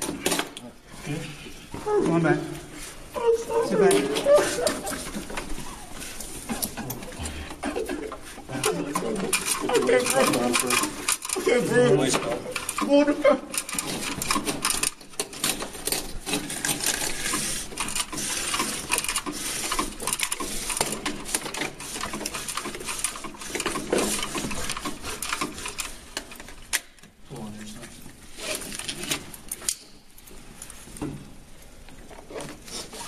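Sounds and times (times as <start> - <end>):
straps and buckles clicking: 3.2 - 27.1.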